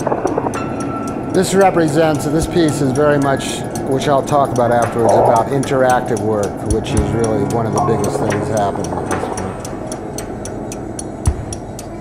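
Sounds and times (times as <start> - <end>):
regular ticking: 0.0 - 12.0
steady low rumble: 0.0 - 12.0.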